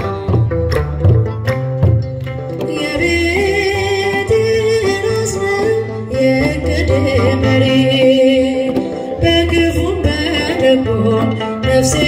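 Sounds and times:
instrumental accompaniment: 0.0 - 12.0
woman singing a hymn: 2.7 - 12.0.

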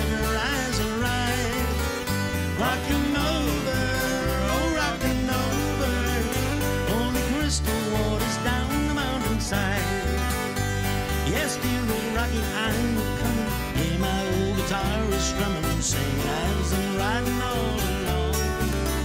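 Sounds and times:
bass line: 0.0 - 19.0
bending melody line: 0.0 - 19.0
strummed acoustic guitar: 0.0 - 19.0.

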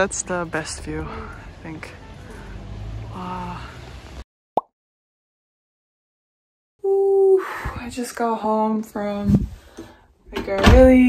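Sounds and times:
rain outdoors: 0.0 - 4.2.

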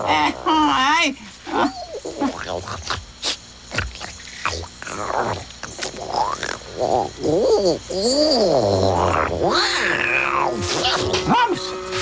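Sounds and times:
creature warbling calls: 3.7 - 11.8.

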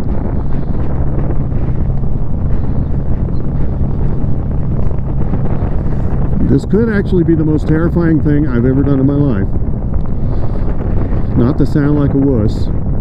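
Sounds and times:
motorcycle engine humming: 0.0 - 13.0
wind roaring over microphone: 0.0 - 13.0.

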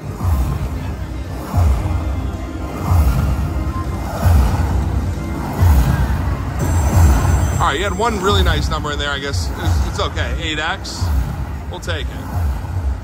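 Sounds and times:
deep beat: 0.0 - 13.0
slot machine win music: 5.7 - 10.2.

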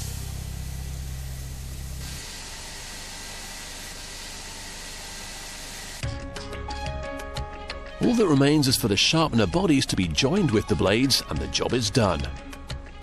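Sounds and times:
low hum: 0.0 - 3.3
grinder hissing: 0.0 - 6.0.

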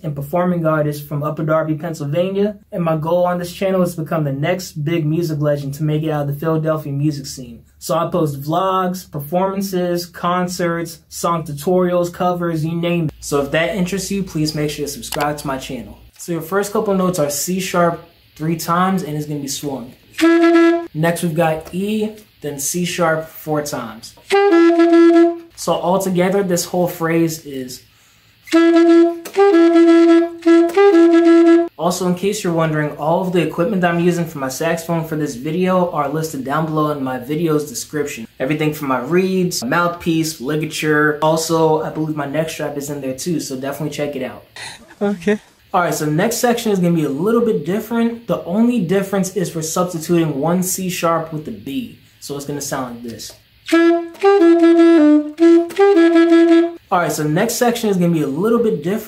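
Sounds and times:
alto saxophone phrase: 20.2 - 21.0, 24.3 - 25.6, 28.5 - 31.8, 53.7 - 56.9.

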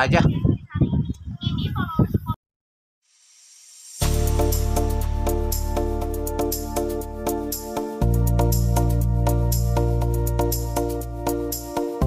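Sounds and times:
background music: 4.0 - 12.0.

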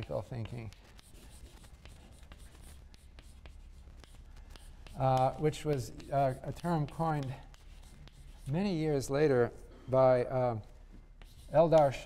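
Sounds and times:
chalk tapping and scratching: 0.0 - 9.6, 10.3 - 12.0.

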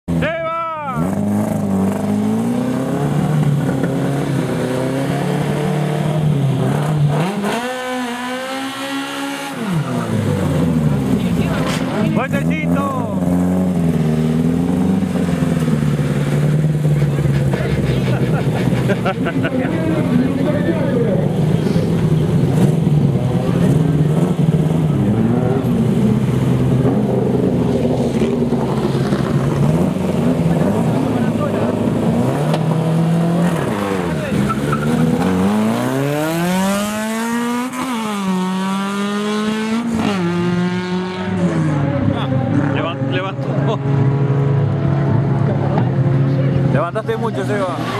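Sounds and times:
car engine revving and accelerating: 0.9 - 47.9.

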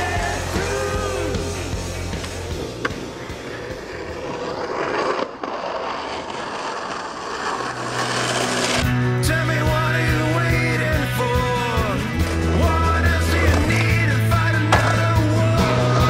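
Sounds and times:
person singing: 0.0 - 1.6, 9.1 - 16.0
music with bass line: 0.0 - 2.8, 8.8 - 16.0
skateboard wheels rolling on concrete: 0.0 - 16.0.

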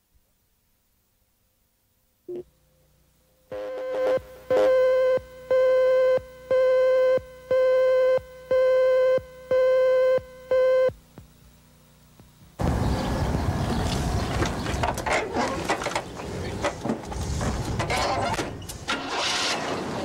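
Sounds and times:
buzzy countdown beeps: 3.5 - 10.9.

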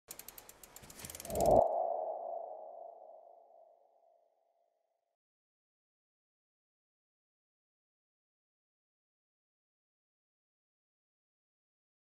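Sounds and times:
ticking clicks building into swell: 0.1 - 3.2
ringing tone: 1.2 - 3.7.

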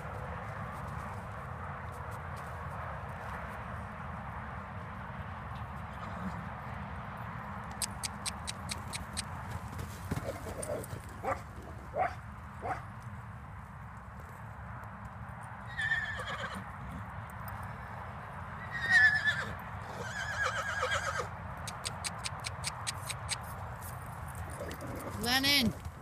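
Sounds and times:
hoofbeats: 7.6 - 18.0, 18.6 - 26.0
horse neighing: 15.7 - 16.6, 18.6 - 21.3.

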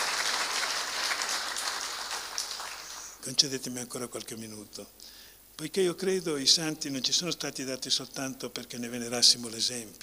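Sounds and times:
audience applauding: 0.0 - 3.2.

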